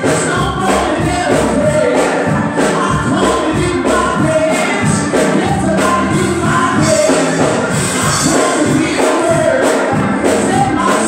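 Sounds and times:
choir voices: 0.0s - 11.0s
gospel music with steady beat: 0.0s - 11.0s.

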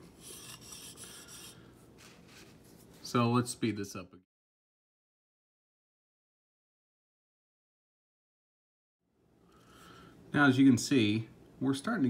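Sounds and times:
chisel scraping on sharpening stone: 0.0s - 1.6s.

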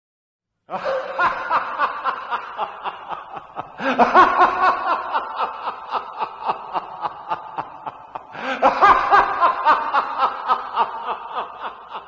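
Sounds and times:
person laughing: 0.7s - 12.0s.

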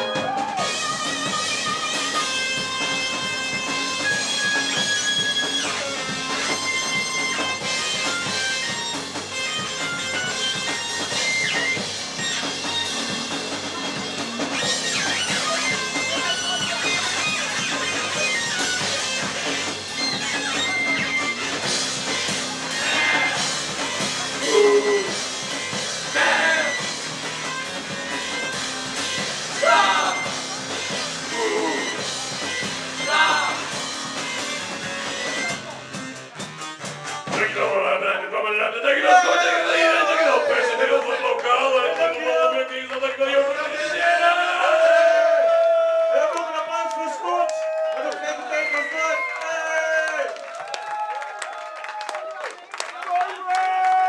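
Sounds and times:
electric guitar: 0.0s - 37.5s
drums: 0.0s - 54.0s.

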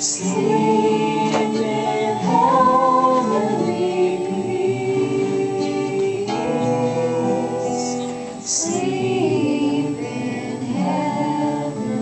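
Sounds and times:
group singing a carol: 0.0s - 12.0s
strummed acoustic guitar: 0.0s - 12.0s.

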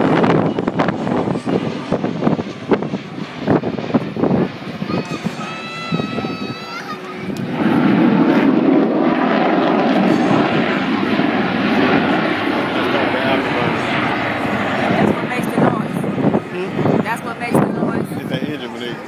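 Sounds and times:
jet engines on low-speed pass: 0.0s - 19.0s.

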